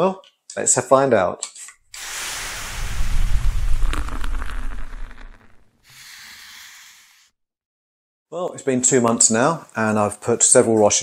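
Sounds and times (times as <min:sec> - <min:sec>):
deep rush of noise with crackles: 0:02.0 - 0:05.7.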